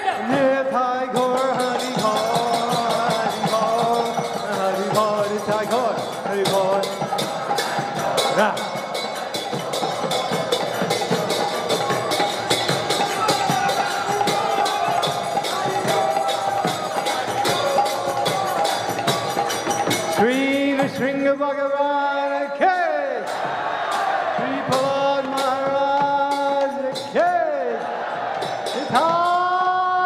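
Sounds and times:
group singing: 0.0 - 20.9, 23.2 - 29.9
drumming: 0.0 - 22.0, 22.8 - 30.0
hand cymbals struck: 1.1 - 30.0.

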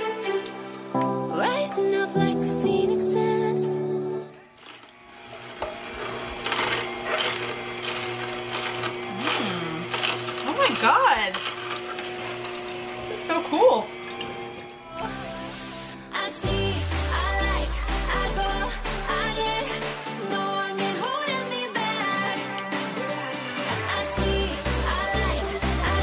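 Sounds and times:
juicer motor humming: 4.2 - 26.0
celery crunching: 4.4 - 12.8.

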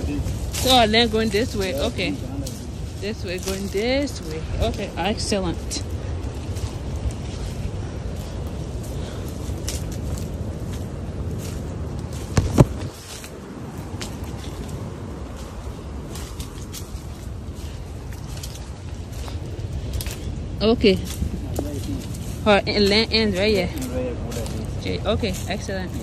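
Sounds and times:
footsteps crackling in brush: 0.0 - 26.0
wind rumbling on microphone: 0.0 - 26.0.

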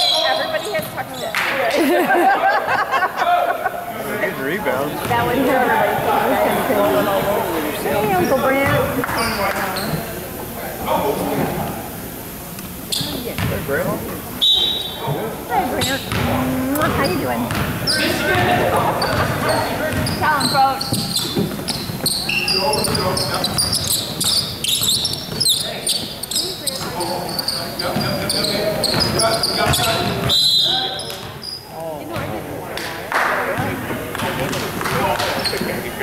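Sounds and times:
sneaker squeaks: 0.0 - 1.6, 8.1 - 10.2, 12.8 - 13.7, 14.4 - 32.4, 33.6 - 36.0
spectators talking: 0.0 - 36.0
voices echoing: 0.0 - 36.0
basketball bouncing on wooden floor: 13.0 - 13.7, 15.8 - 18.5, 19.1 - 26.1.

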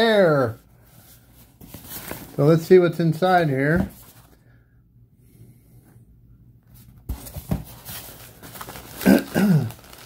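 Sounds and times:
packing rustling and crinkling: 7.1 - 10.0.

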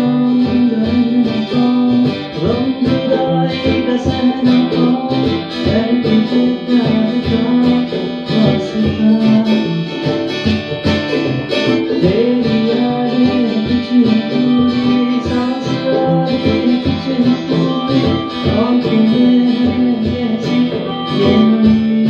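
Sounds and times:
acoustic guitar playing: 0.0 - 22.0.

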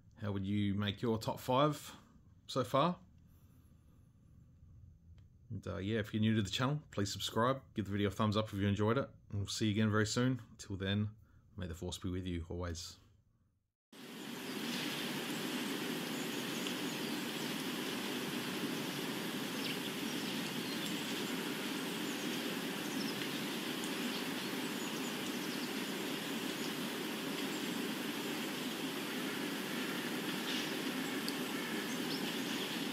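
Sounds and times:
steady rushing noise: 14.0 - 32.9
faint bird chirps: 14.1 - 32.9.

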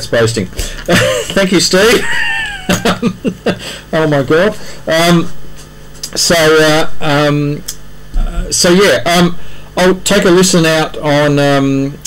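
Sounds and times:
man laughing: 0.8 - 3.9.

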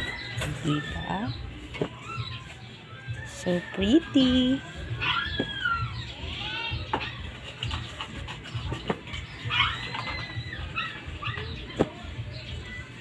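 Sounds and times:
chickens calling: 0.0 - 13.0.

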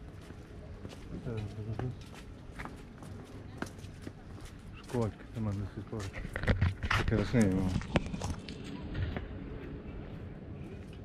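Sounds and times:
footsteps on stone paving: 0.0 - 11.0.

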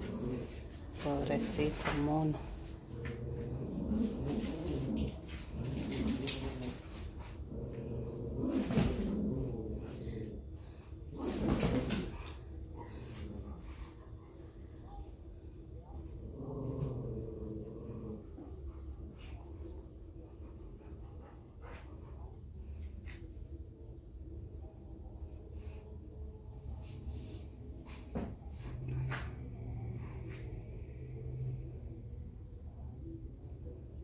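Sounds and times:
dogs growling while play-fighting: 0.0 - 14.1, 16.0 - 21.8.

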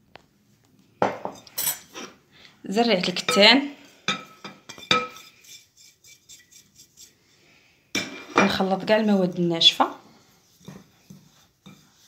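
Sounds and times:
hand rubbing flour in glass bowl: 5.2 - 7.3, 8.6 - 12.0.

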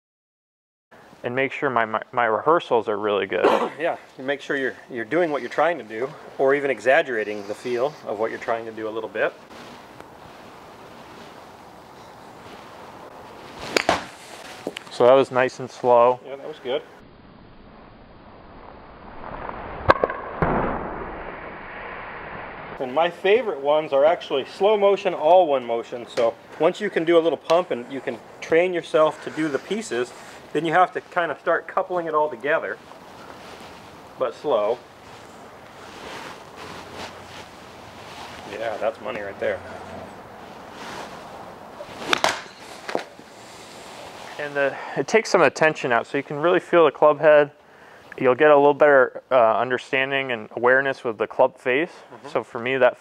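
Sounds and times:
golf club swish: 12.5 - 14.8, 40.6 - 44.4
ball hitting practice net: 13.6 - 14.7, 42.0 - 43.1
golf club striking ball: 13.7 - 14.2, 42.1 - 43.0.

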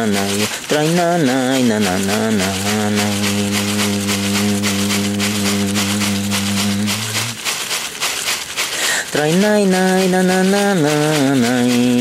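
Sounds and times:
man singing long low note: 0.0 - 7.4, 9.2 - 12.0
leaf-bundle rattle shaken: 0.0 - 12.0.

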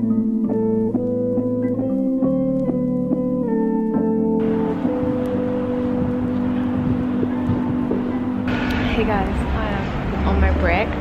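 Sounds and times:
traffic rumble: 4.4 - 11.0
vehicle engine idling: 4.4 - 11.0.

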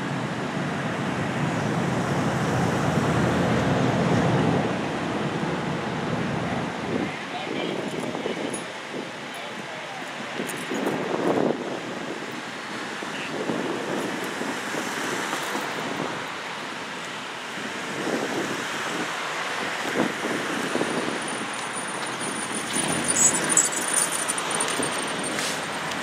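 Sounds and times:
wind buffeting microphone: 10.0 - 26.0
cars driving past: 12.4 - 26.0.

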